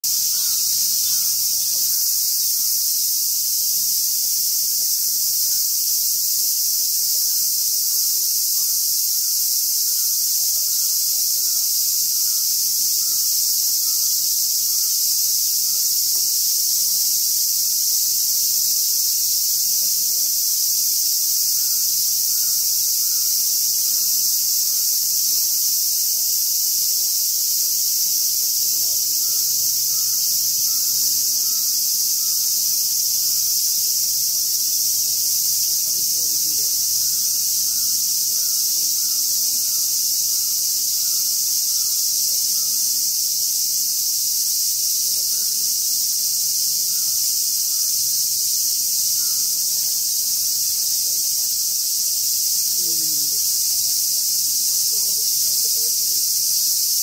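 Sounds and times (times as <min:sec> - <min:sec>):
high-pitched insect chorus: 0:00.0 - 0:57.0.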